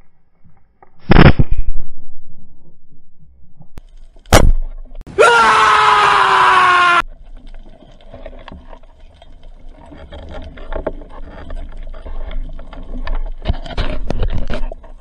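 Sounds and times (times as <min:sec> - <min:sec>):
underwater clicks and crackles: 0:03.8 - 0:05.0, 0:07.0 - 0:15.0
man yelling: 0:05.1 - 0:07.0.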